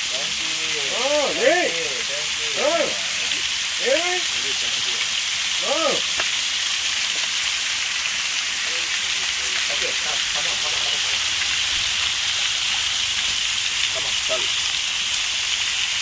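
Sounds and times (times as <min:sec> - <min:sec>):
shower water pouring: 0:00.0 - 0:16.0.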